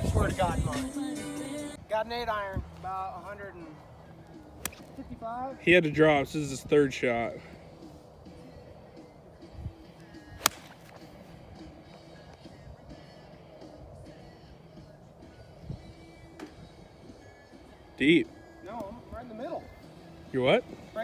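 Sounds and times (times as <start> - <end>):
faint background music: 0.0 - 21.0
golf club striking ball: 4.6 - 4.9, 10.4 - 11.0.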